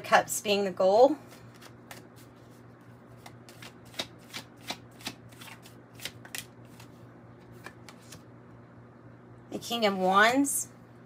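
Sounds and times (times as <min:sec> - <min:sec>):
cards being shuffled: 0:01.3 - 0:08.3.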